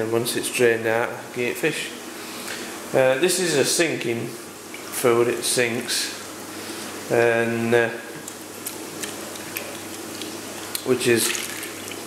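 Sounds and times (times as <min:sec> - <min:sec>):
fish splashing pond water: 0:08.2 - 0:12.0.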